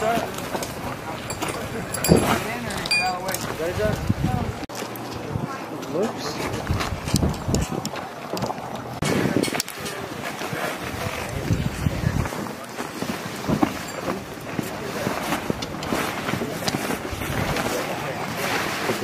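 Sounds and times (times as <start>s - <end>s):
scattered voices: 0.0s - 19.0s
wind rumbling on microphone: 0.3s - 5.7s, 6.4s - 19.0s
tent fabric rustling and flapping: 9.0s - 19.0s.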